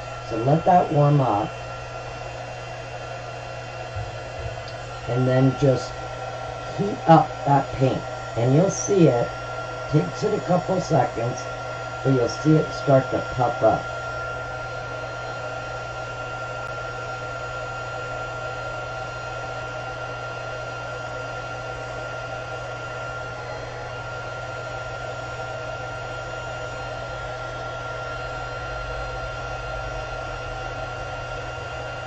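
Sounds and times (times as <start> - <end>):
heat tool blowing hot air: 0.0 - 32.0.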